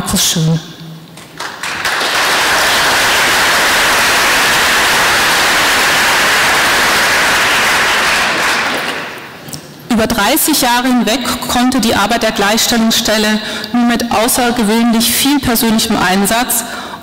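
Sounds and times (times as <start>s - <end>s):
audience applauding: 1.2s - 9.3s.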